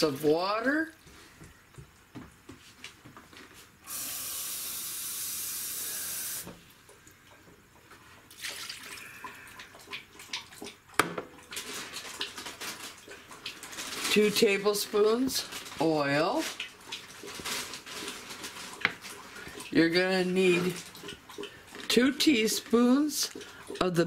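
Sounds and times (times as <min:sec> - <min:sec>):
water pouring into metal pot: 0:08.3 - 0:10.1.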